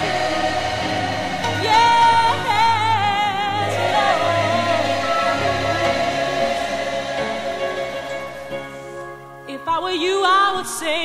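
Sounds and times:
sustained chords: 0.0 - 9.4
person singing with vibrato: 1.4 - 7.6.

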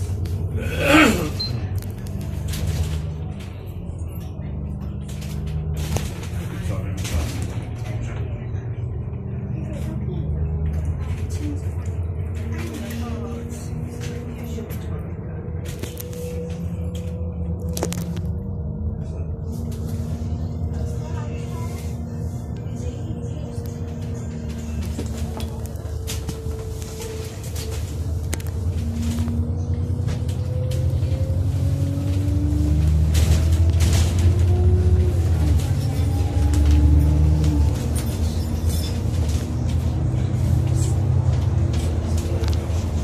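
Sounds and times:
bus engine and road rumble: 0.0 - 43.0.

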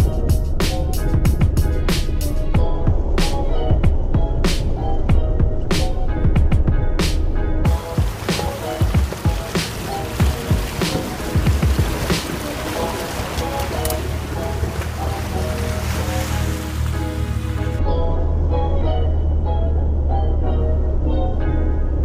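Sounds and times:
background music: 0.0 - 22.0
tyre noise on wet ground: 7.7 - 17.8
water splashing: 7.7 - 17.8.

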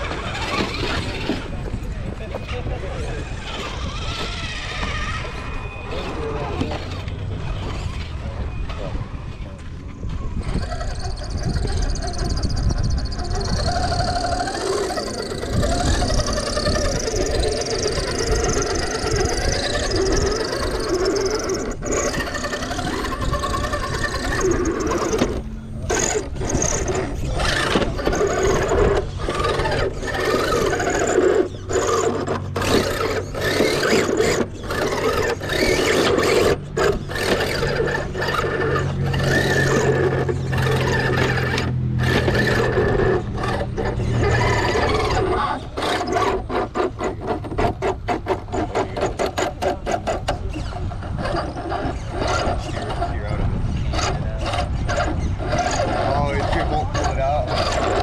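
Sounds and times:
electric motor whining: 0.0 - 58.0
tyres scrabbling on rock: 10.3 - 58.0.

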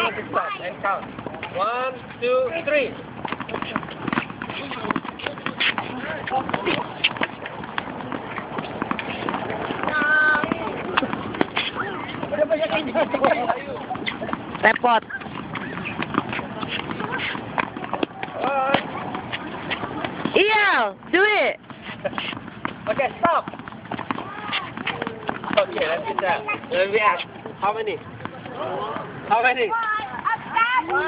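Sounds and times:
tennis balls bouncing on rackets: 0.0 - 31.0
children's voices: 29.7 - 31.0.

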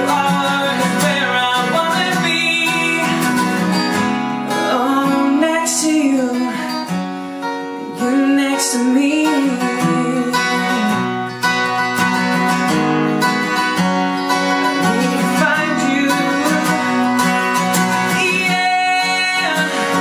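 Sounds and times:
man singing: 0.0 - 7.0, 7.8 - 11.3, 14.6 - 20.0
fingerpicked acoustic guitar: 0.0 - 20.0.

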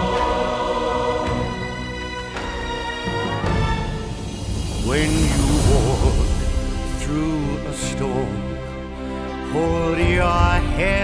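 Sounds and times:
choir holding sustained chord: 0.0 - 10.6.

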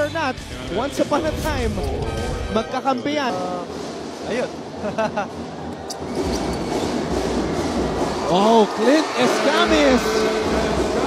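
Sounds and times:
arena crowd noise: 2.1 - 11.0.

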